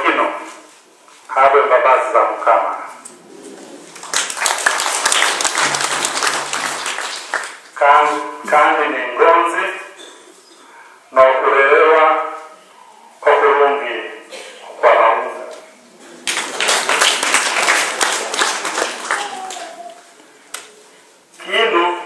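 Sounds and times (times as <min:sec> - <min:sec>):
man speaking over a microphone: 0:00.0 - 0:00.6, 0:01.3 - 0:03.0, 0:07.8 - 0:10.1, 0:11.1 - 0:12.6, 0:13.2 - 0:15.7, 0:21.4 - 0:22.0
crowd clapping: 0:03.9 - 0:07.8, 0:16.2 - 0:20.7.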